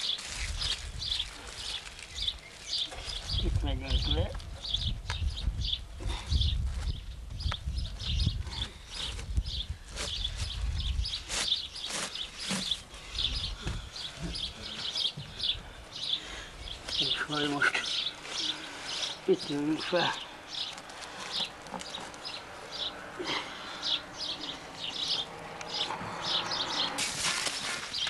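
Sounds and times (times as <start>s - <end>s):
dry cattail rustling and crackling: 0.0s - 5.1s, 8.8s - 15.4s, 16.1s - 28.0s
small birds chirping: 0.0s - 28.0s.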